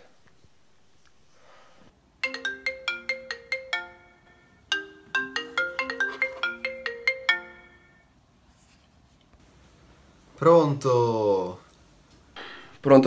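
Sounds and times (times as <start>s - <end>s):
phone ringtone: 2.2s - 8.2s.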